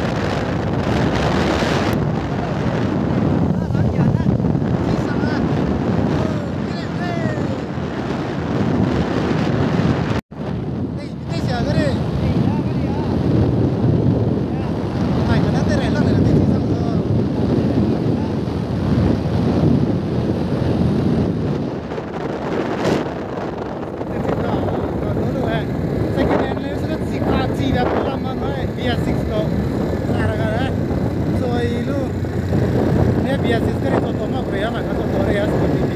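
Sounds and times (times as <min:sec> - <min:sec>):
scooter engine and road noise: 0:00.0 - 0:35.9
wind buffeting microphone: 0:00.0 - 0:35.9.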